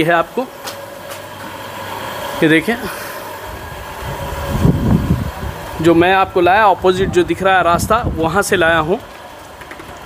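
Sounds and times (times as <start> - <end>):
low street rumble: 0.0 - 10.0
mechanical hum: 0.0 - 10.0.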